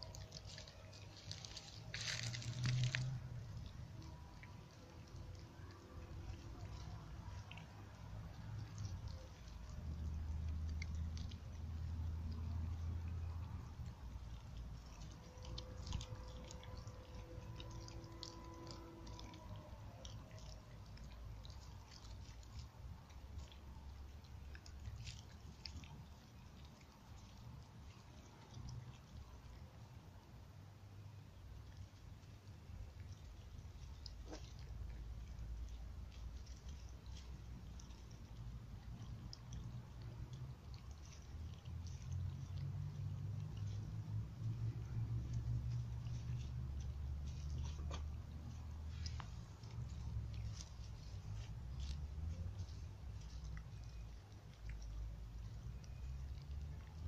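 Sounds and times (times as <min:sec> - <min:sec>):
dog chewing and crunching fish: 0:00.0 - 0:57.0.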